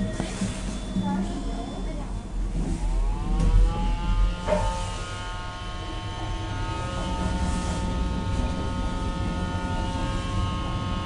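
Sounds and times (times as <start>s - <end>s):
elevator machine whining: 0.0s - 11.0s
low rumble: 0.0s - 11.0s.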